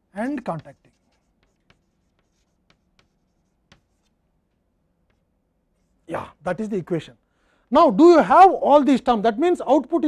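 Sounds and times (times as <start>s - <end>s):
chalk tapping on blackboard: 0.3s - 6.0s.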